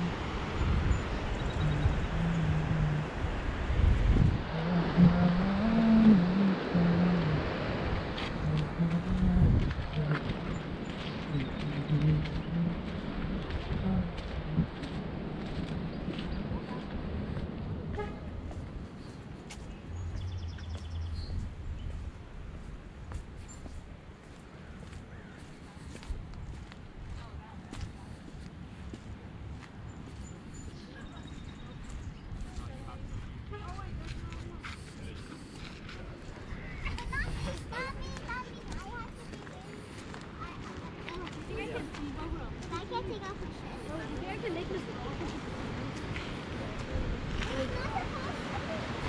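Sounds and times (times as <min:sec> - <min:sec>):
low outdoor rumble: 0:00.0 - 0:23.1
indistinct conversation: 0:25.7 - 0:49.0.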